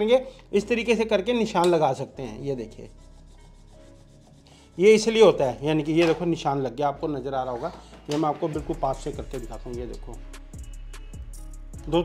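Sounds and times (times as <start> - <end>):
pencil scratching on plywood: 2.6 - 5.1.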